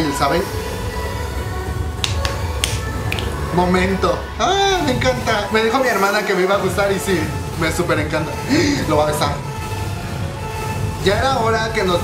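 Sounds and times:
music with low bass: 0.0s - 12.0s
finger snaps: 2.0s - 3.5s.

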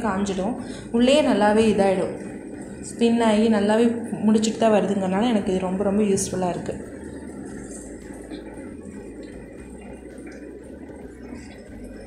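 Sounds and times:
washing machine humming: 0.0s - 12.0s.

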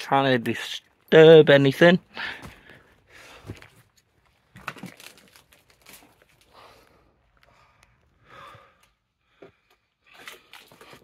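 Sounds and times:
rustling and crinkling of debris: 0.5s - 8.1s, 9.4s - 11.0s.

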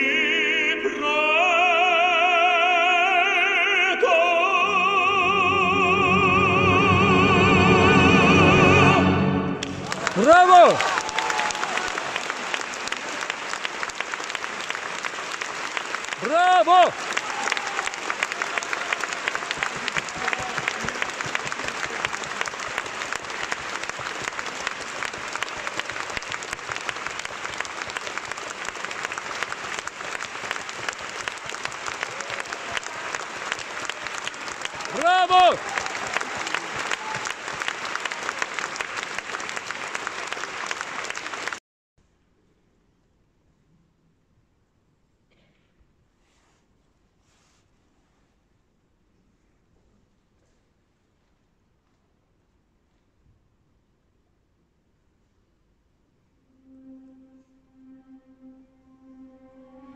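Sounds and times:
audience applauding: 9.0s - 41.6s
loud shouts from crowd: 9.9s - 12.1s, 16.2s - 20.9s, 34.8s - 37.3s.

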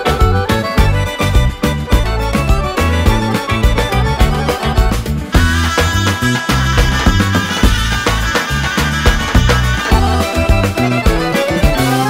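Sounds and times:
accordion: 0.0s - 12.0s
brisk steady beat: 0.0s - 12.0s
electric bass: 0.0s - 12.0s.

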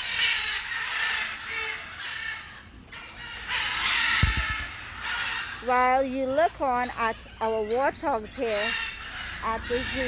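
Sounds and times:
macaws squawking harshly: 0.0s - 10.0s.

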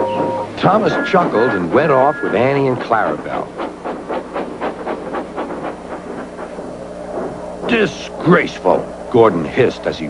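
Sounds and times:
low steady hum: 0.0s - 10.0s
steam locomotive chuffing: 0.0s - 10.0s.

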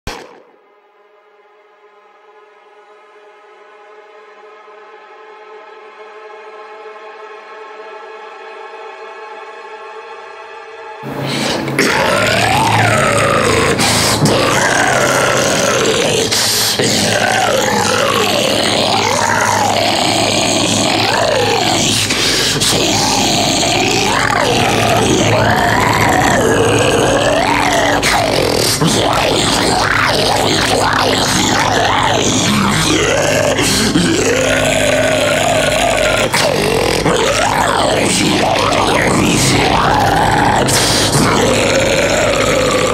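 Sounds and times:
deep guttural growl: 11.0s - 42.9s
heavy metal backing track: 11.0s - 42.9s.

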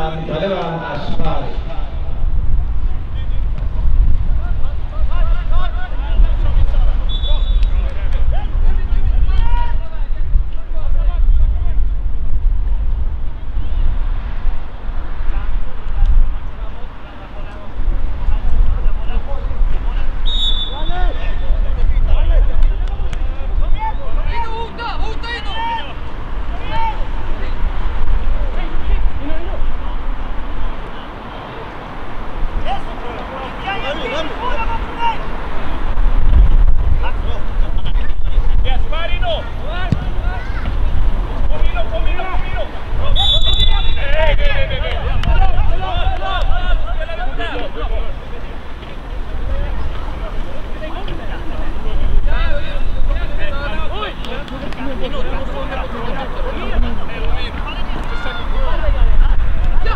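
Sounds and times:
people calling and shouting: 0.0s - 36.2s, 36.8s - 59.9s
wind rumble on microphone: 0.8s - 20.2s, 26.1s - 30.8s, 35.4s - 47.4s, 58.4s - 59.9s.

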